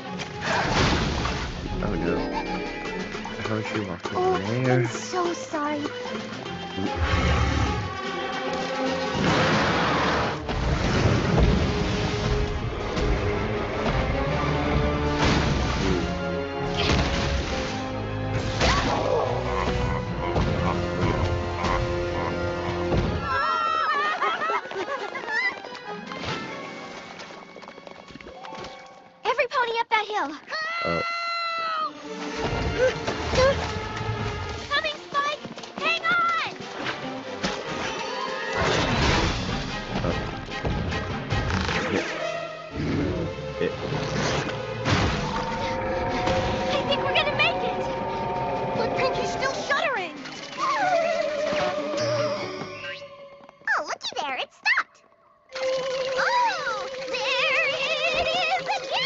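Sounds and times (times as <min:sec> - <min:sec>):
cartoon background music: 0:00.0 - 0:24.1, 0:30.6 - 0:59.0
deep rumbling: 0:44.7 - 0:49.8
harsh monster roar: 0:45.1 - 0:49.7.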